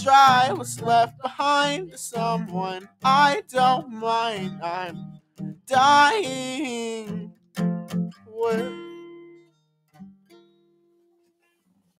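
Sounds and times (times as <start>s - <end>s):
acoustic guitar chords: 0.0s - 11.1s.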